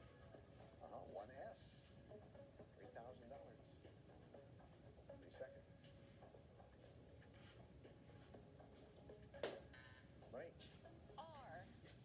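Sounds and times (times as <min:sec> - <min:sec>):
game show audio from phone speaker: 0:00.3 - 0:07.6, 0:09.2 - 0:11.9.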